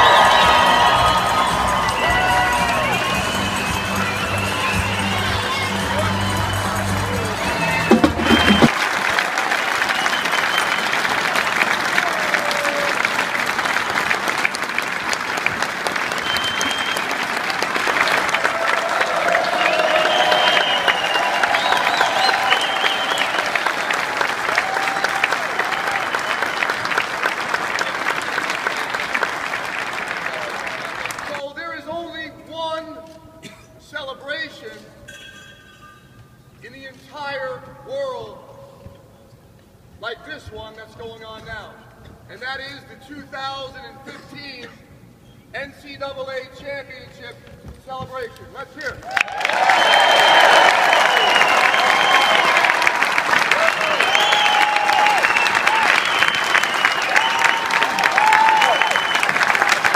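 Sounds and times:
crowd whooping and shouting: 0:00.0 - 0:10.9, 0:11.6 - 0:13.2, 0:18.1 - 0:26.7, 0:49.0 - 0:59.9
applause: 0:00.0 - 0:31.4, 0:48.8 - 0:59.9
crowd cheering: 0:00.0 - 0:31.4, 0:49.0 - 0:59.9
pep band brass and drums: 0:01.4 - 0:08.9.

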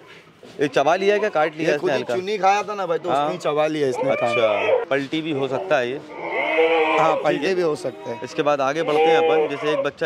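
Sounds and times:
goat bleating: 0:03.8 - 0:10.0.

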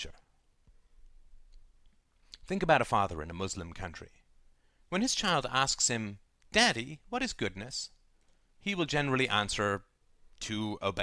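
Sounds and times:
person speaking: 0:00.0 - 0:00.4, 0:01.1 - 0:11.0.

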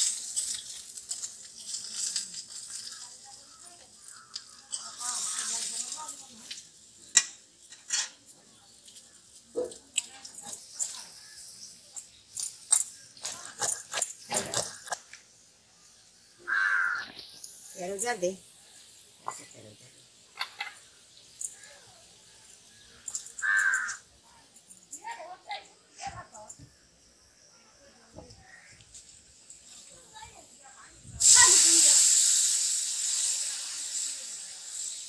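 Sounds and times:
paste sizzling in hot oil: 0:00.0 - 0:23.0, 0:28.4 - 0:35.0
woman speaking: 0:04.8 - 0:06.6, 0:17.8 - 0:18.4
harsh bird call: 0:16.4 - 0:17.2.

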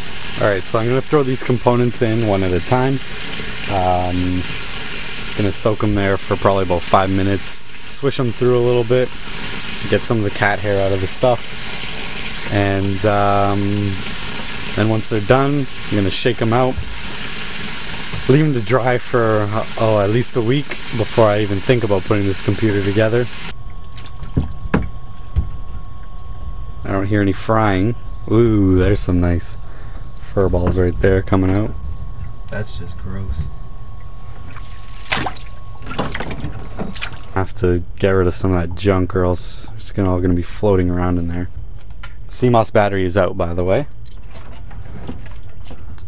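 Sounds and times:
water sloshing in a sink: 0:00.0 - 0:31.0, 0:34.0 - 0:38.0
steady low rumble: 0:18.0 - 0:35.9.

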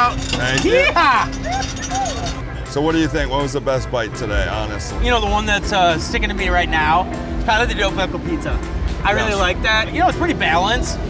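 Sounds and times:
background music: 0:00.0 - 0:11.0
men exclaiming: 0:00.6 - 0:02.4.

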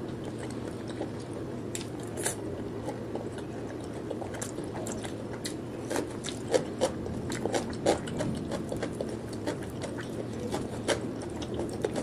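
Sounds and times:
chewing crisp cucumber: 0:00.0 - 0:12.0.

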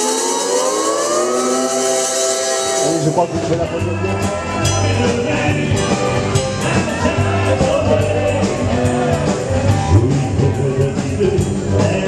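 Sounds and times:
lap steel guitar sliding chord: 0:00.0 - 0:03.6.

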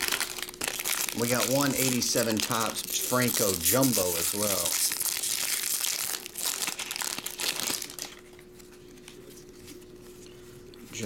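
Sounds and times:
foil wrapper crinkling: 0:00.0 - 0:10.3
faint steady hum: 0:00.0 - 0:11.0.

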